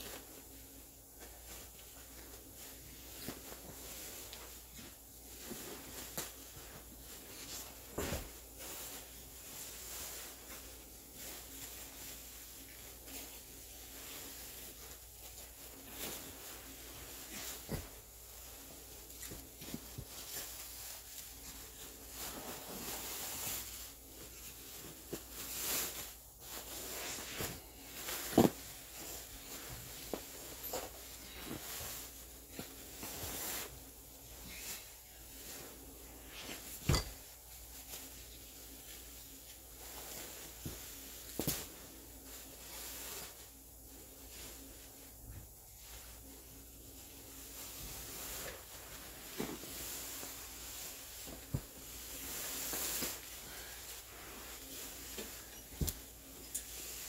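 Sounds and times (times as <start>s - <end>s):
plastic bag rustling: 0.0s - 57.0s.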